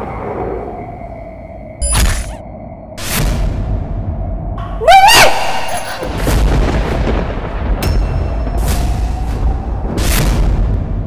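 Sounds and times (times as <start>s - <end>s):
rising pitched cry: 4.6s - 6.0s
deep booming rumble: 6.1s - 11.0s.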